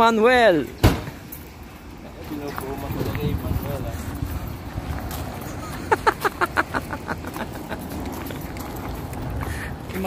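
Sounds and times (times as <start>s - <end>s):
footsteps crunching on gravel: 1.6s - 10.0s.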